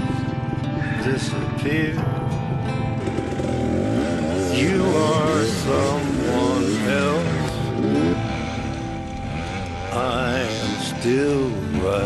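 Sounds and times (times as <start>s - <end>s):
backing music: 0.0s - 12.0s
dirt bike engine running: 0.0s - 12.0s
person singing: 4.4s - 7.8s, 9.8s - 12.0s.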